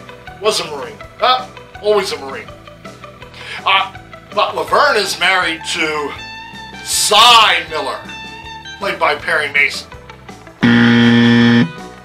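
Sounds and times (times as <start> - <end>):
wrong-answer buzzer: 10.6 - 11.8.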